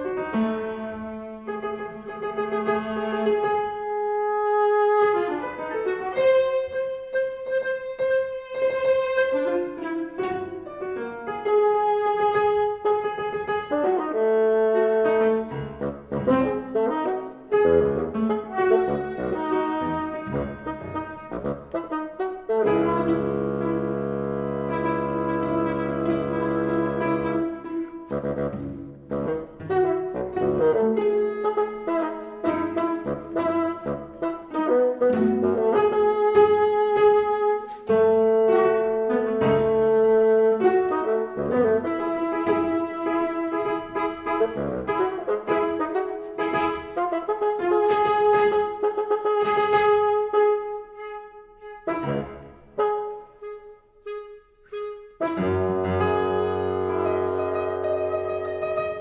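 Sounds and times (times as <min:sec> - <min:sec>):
orchestral music with bassoon: 0:00.0 - 0:59.0.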